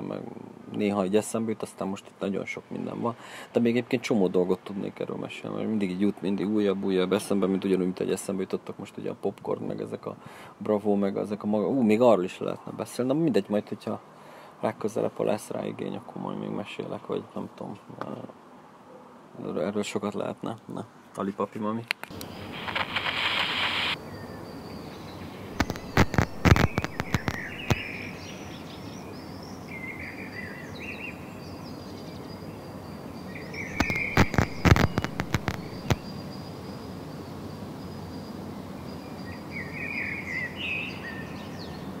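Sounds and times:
brief hiss: 22.1 - 24.0
loud sharp cracks: 22.1 - 24.0, 25.6 - 28.0, 33.8 - 36.1
birds chirping: 22.1 - 42.0.

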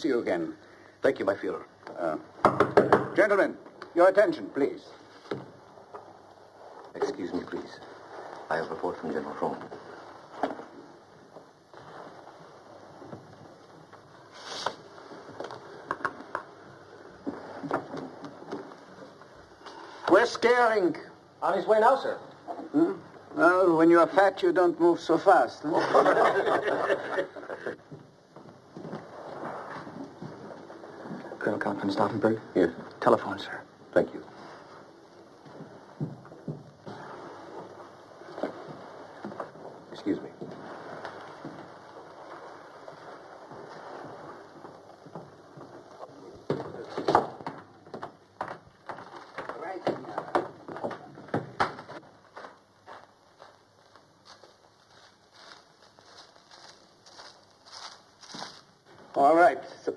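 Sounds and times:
film soundtrack hiss: 0.0 - 59.9
soft footsteps on a floor: 4.9 - 19.6, 27.5 - 59.2
papers rustling: 26.4 - 59.2.

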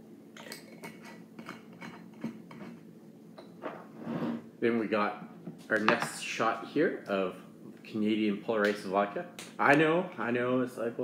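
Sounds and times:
glassware clinking: 0.4 - 2.6.

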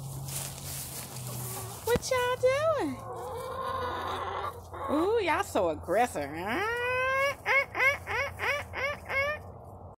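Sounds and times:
hens squawking: 1.2 - 5.2, 6.3 - 9.6.

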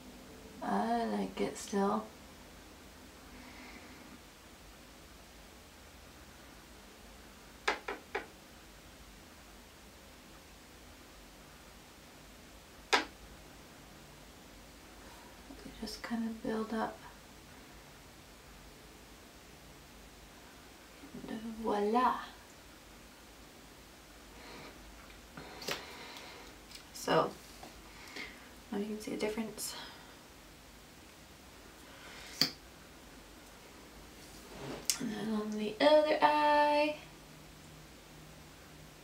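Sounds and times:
faint room noise: 0.0 - 39.0.

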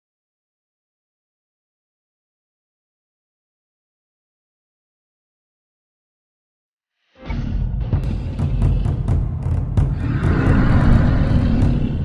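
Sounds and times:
rush-and-rumble sound effect: 7.2 - 12.0
deep bass: 7.7 - 12.0
rhythmic drum hits: 7.7 - 12.0.

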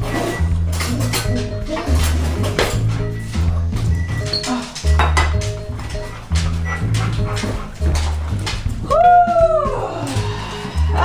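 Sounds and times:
background music with bass line: 0.0 - 11.0
dog whining: 5.9 - 8.4.

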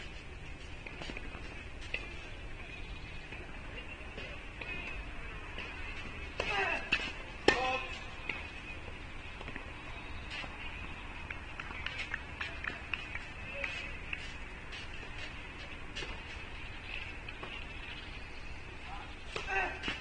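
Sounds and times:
tennis ball hit: 6.4 - 8.4
person shouting: 19.4 - 19.8.

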